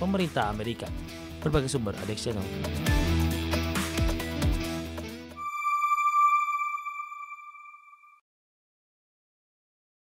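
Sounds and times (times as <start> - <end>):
electronic chime: 5.4 - 8.2.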